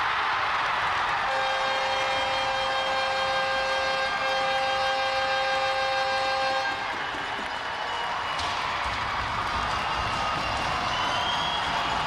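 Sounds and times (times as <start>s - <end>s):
crowd cheering: 0.0s - 12.0s
loud goal horn: 1.2s - 7.0s.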